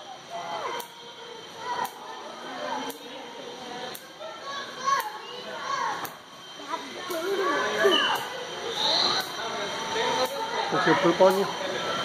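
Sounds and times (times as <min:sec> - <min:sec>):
chatter of children and adults: 0:00.0 - 0:12.0.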